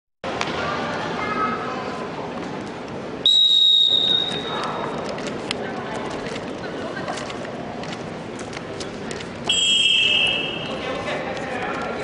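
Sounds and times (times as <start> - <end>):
referee's whistle blast: 3.2 - 4.6, 9.5 - 10.7.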